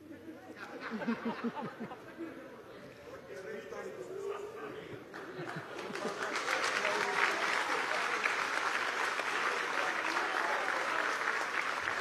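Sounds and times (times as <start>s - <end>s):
steady applause: 5.2s - 12.0s.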